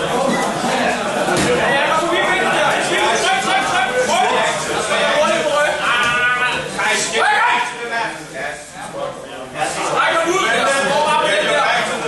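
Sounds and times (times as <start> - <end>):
men shouting: 2.0 - 7.8.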